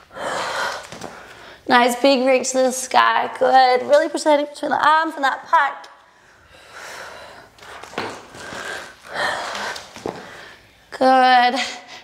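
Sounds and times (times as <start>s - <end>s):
person breathing hard: 0.0s - 1.7s, 6.1s - 10.8s.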